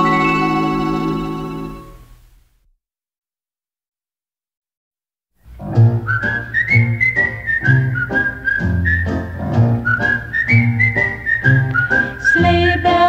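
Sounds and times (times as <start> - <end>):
whistled melody: 0.0 - 2.0, 5.8 - 13.0
rhythm accompaniment with bass: 5.6 - 12.0.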